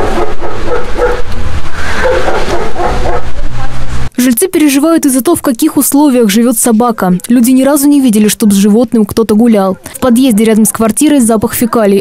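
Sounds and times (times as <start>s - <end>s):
dog barking: 0.0s - 1.3s, 1.9s - 3.4s.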